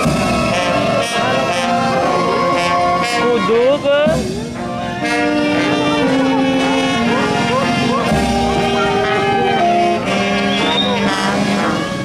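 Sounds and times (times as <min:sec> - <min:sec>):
vehicle: 0:00.0 - 0:12.0
voices: 0:00.0 - 0:12.0.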